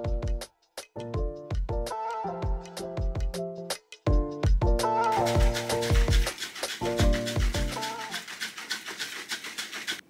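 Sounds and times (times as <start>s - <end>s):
shaker bottle rattling and sloshing: 5.1s - 10.0s.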